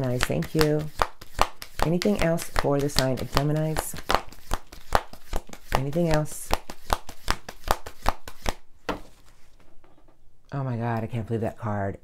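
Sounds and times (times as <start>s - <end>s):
cards being shuffled: 0.0s - 10.2s.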